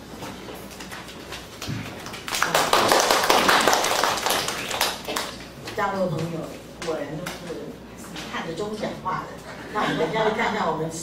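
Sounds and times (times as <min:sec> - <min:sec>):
roomful of people applauding: 0:01.5 - 0:05.5.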